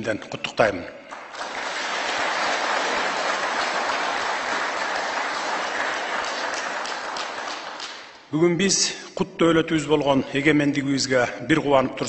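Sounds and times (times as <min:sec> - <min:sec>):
audience applauding: 0:01.1 - 0:08.2.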